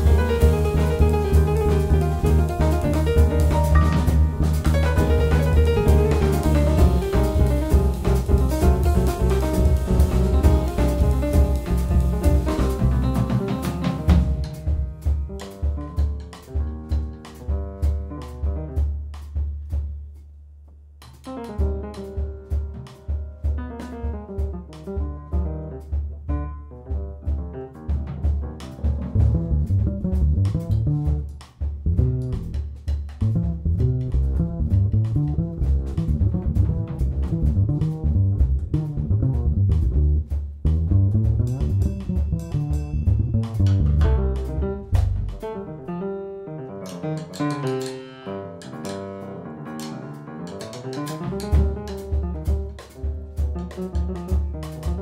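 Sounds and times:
plucked double bass: 0:00.0 - 0:19.3, 0:21.2 - 0:47.9, 0:48.6 - 0:55.0
piano: 0:00.0 - 0:19.8, 0:21.0 - 0:55.0
drum kit: 0:00.0 - 0:55.0.

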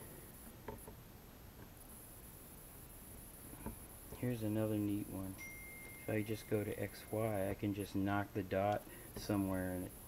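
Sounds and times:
faint high hiss: 0:00.0 - 0:10.0.

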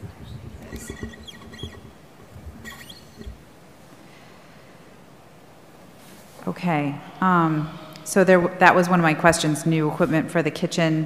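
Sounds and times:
short squeaks: 0:00.2 - 0:03.5.

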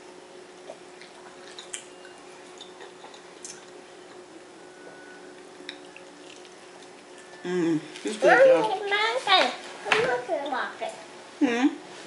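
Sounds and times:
steady low hum: 0:00.0 - 0:12.0
people chewing: 0:00.6 - 0:08.9.

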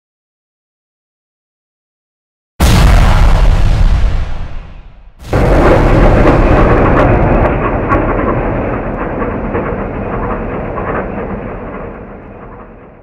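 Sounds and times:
explosion deep rumble with crackles: 0:02.6 - 0:13.0.

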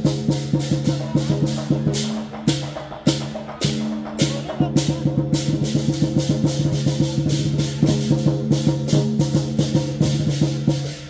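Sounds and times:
big drum beaten fast: 0:00.0 - 0:11.0
cymbals clashing: 0:00.0 - 0:11.0.

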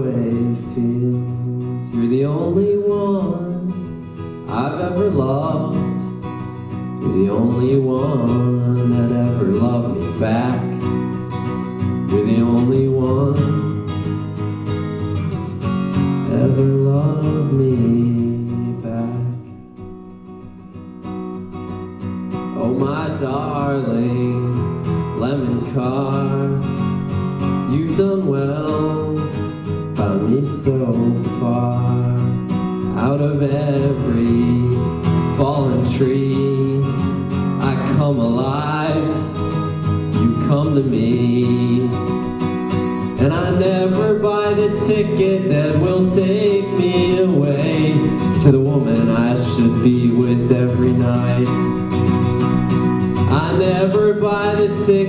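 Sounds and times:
man singing: 0:00.0 - 0:06.3, 0:06.9 - 0:14.2, 0:15.2 - 0:19.7, 0:22.4 - 0:55.0
acoustic guitar: 0:00.0 - 0:55.0.

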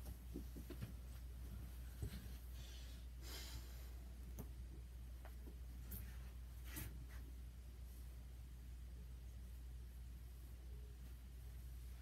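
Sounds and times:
steady low hum: 0:00.0 - 0:12.0
soft rustle: 0:04.2 - 0:12.0.

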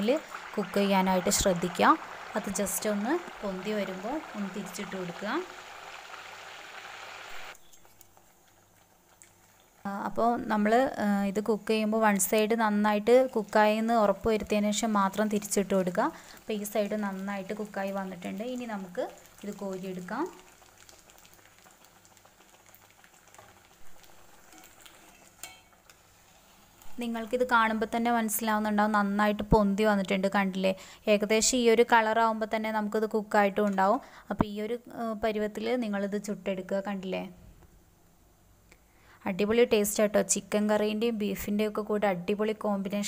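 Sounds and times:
faint hiss: 0:00.0 - 0:08.6, 0:14.8 - 0:22.4
hot oil sizzling: 0:00.0 - 0:29.5.

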